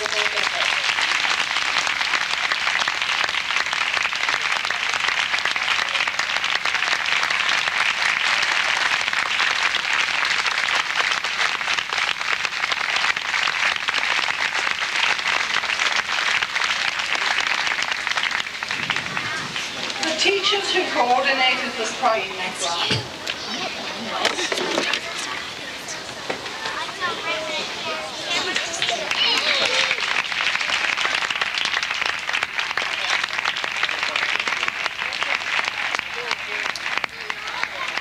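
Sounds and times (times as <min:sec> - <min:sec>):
crowd applauding: 0:00.0 - 0:38.0.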